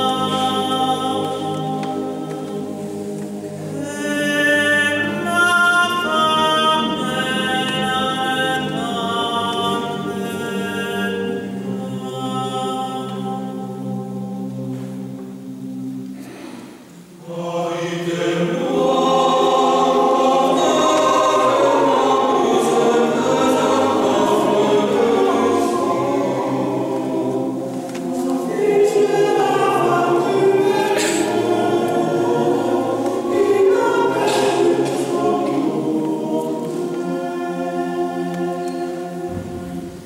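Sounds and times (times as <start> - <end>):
men's choir singing unaccompanied: 0.0 - 16.1, 16.9 - 40.0.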